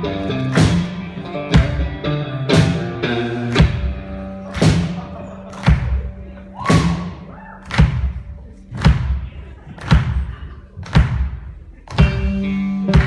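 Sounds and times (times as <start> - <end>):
guitar sustained notes: 0.0 - 6.6.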